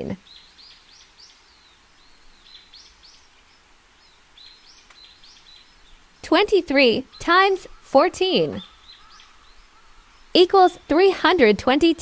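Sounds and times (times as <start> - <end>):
low steady hiss: 0.0 - 12.0
faint bird chirps: 0.2 - 11.0.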